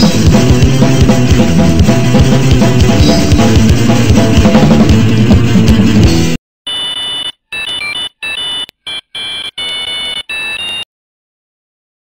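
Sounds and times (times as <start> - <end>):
high electronic beeps: 6.7 - 10.9.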